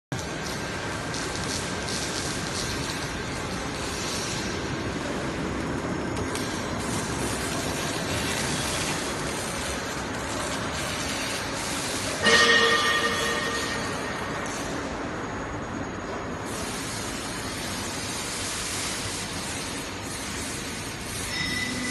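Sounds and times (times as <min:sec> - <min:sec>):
roll forming machine running: 0:00.2 - 0:21.9.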